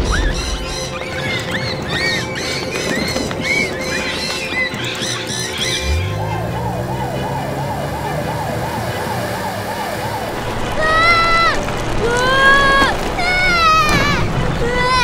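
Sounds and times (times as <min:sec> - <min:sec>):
high bird-like chirps: 0:00.0 - 0:08.4
siren wailing: 0:00.0 - 0:15.0
cartoon engine hum: 0:03.4 - 0:14.0.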